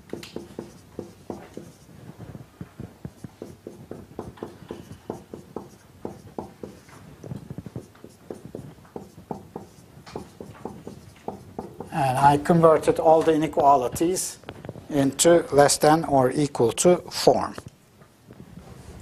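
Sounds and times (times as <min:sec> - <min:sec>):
pen writing taps and strokes: 0:00.0 - 0:01.9, 0:02.8 - 0:11.9.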